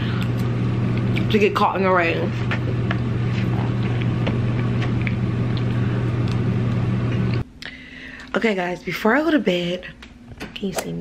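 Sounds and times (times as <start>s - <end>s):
loud machine hum: 0.0s - 7.4s.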